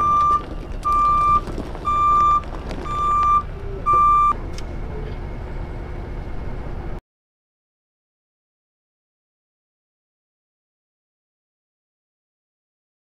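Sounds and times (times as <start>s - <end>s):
truck back-up alarm beeping: 0.0s - 4.4s
diesel engine running: 0.0s - 7.0s.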